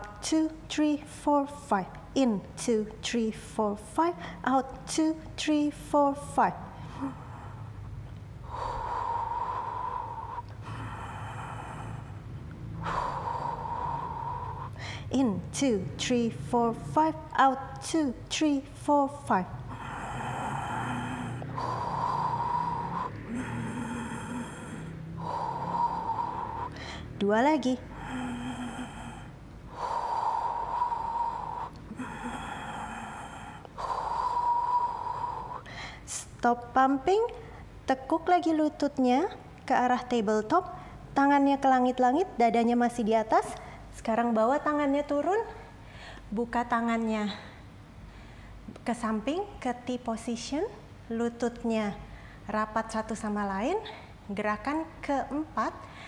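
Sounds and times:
low steady hum: 0:00.0 - 0:56.0
woman breathing: 0:03.9 - 0:05.3, 0:06.6 - 0:17.2, 0:19.2 - 0:36.4, 0:37.2 - 0:37.8, 0:45.2 - 0:46.4, 0:47.1 - 0:48.7, 0:52.0 - 0:52.5, 0:53.7 - 0:54.3, 0:55.8 - 0:56.0.

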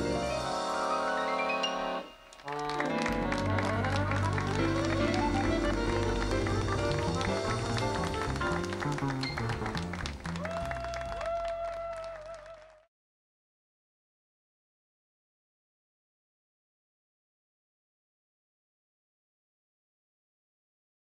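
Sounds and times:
accordion playing fast runs: 0:00.0 - 0:10.3
jazz combo playing: 0:00.0 - 0:10.4.

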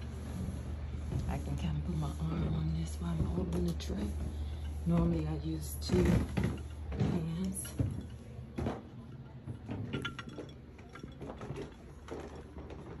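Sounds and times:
footsteps in a hallway: 0:00.0 - 0:10.0.

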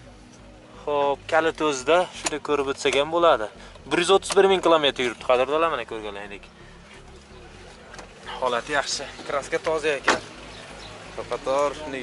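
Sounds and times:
man talking: 0:00.8 - 0:06.5, 0:07.6 - 0:10.3, 0:11.0 - 0:12.0
car door thumping shut: 0:09.6 - 0:10.4.

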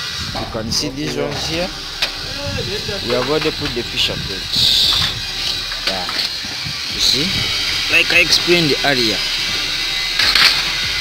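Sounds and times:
steady background noise: 0:00.0 - 0:11.0.

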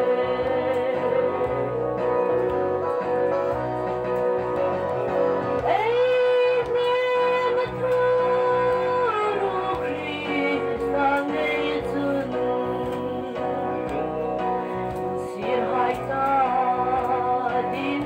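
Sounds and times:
woman singing into microphone: 0:00.0 - 0:02.5, 0:05.6 - 0:14.3, 0:15.2 - 0:18.0
instrumental accompaniment: 0:00.0 - 0:18.0.

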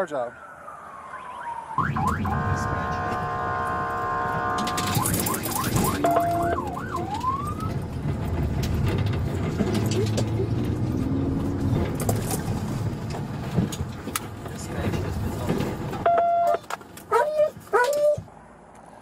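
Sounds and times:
police siren: 0:00.0 - 0:08.0, 0:16.0 - 0:18.2
car engine and road noise: 0:00.0 - 0:19.0.

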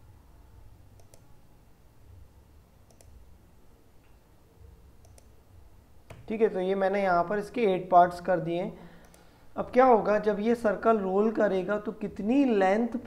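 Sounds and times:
low room hum: 0:00.0 - 0:13.0
computer mouse clicks: 0:01.0 - 0:01.3, 0:02.8 - 0:03.2, 0:05.0 - 0:05.4, 0:09.0 - 0:09.3.

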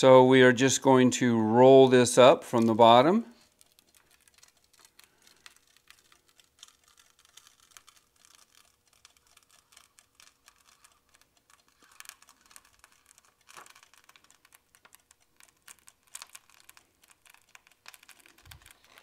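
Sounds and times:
transfer sheet peeling crackle: 0:02.4 - 0:19.0.

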